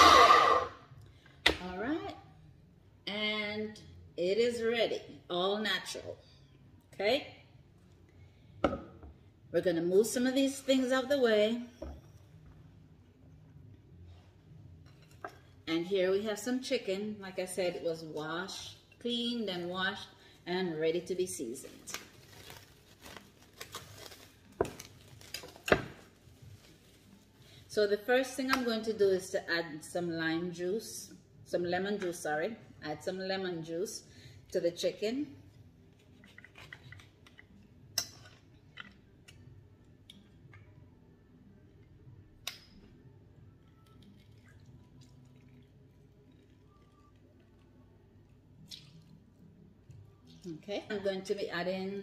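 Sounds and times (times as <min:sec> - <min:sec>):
cling wrap crinkling: 0:21.6 - 0:27.4.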